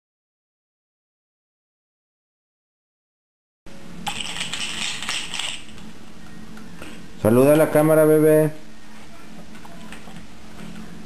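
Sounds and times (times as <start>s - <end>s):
faint low room hum: 3.7s - 11.0s
plastic toys jingling and rattling: 4.1s - 5.6s.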